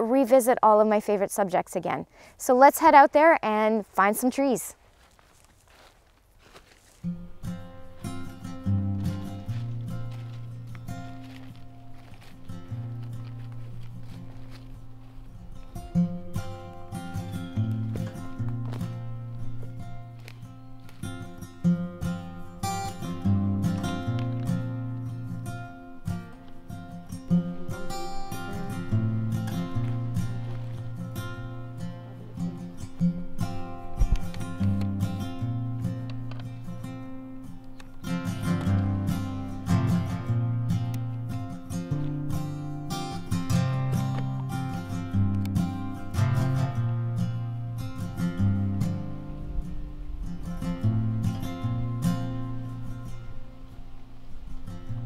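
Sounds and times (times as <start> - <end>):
acoustic guitar music: 0.0 - 4.6, 6.6 - 55.0.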